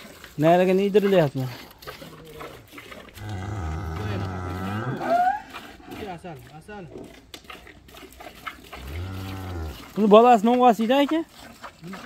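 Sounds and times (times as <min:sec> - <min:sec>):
cow mooing: 0:03.2 - 0:05.5, 0:08.7 - 0:09.8.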